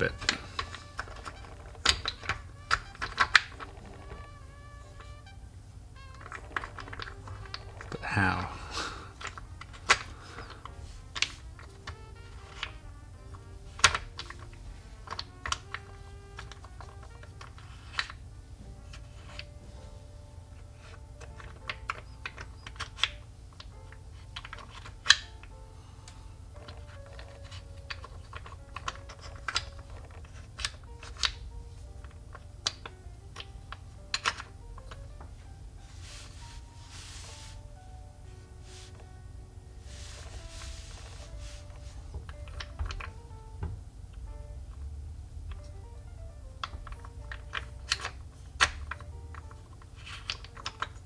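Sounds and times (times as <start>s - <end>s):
wooden blocks clicking and knocking: 0.0s - 38.0s, 39.8s - 51.0s.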